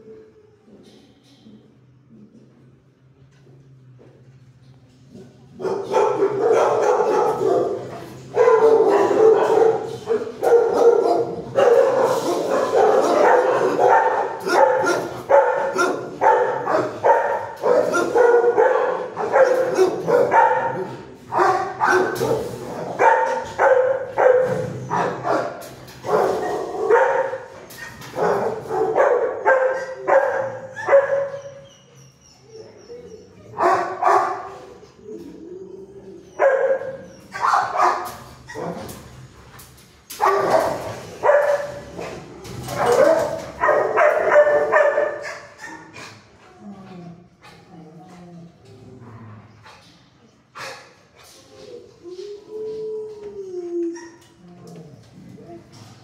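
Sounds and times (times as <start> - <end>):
dogs barking: 5.5 - 31.7, 33.4 - 34.8, 36.3 - 38.9, 40.1 - 46.0.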